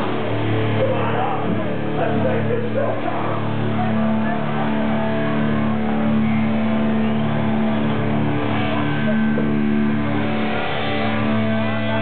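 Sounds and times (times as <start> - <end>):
distorted electric guitars and bass: 0.0 - 12.0
hardcore band playing: 0.0 - 12.0.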